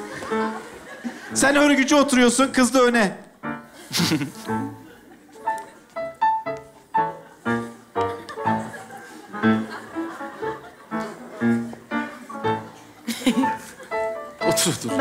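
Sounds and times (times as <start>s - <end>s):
upright piano playing chords: 0.0s - 15.0s.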